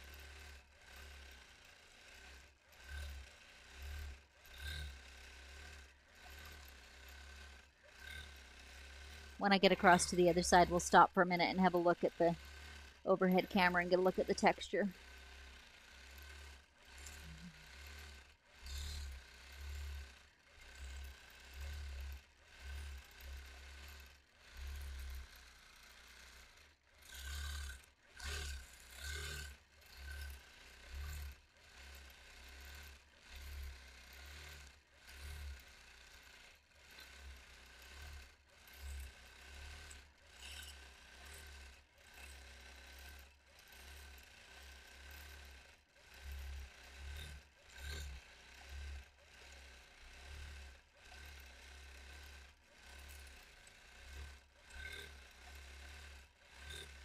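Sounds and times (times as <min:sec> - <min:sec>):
quilting machine stitching: 0:00.1 - 0:25.5, 0:26.1 - 0:45.3.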